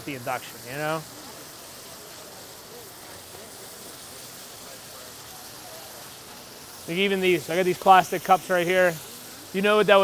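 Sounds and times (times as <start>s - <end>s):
faint crowd chatter: 0.0s - 10.0s
meat sizzling in a skillet: 0.0s - 10.0s.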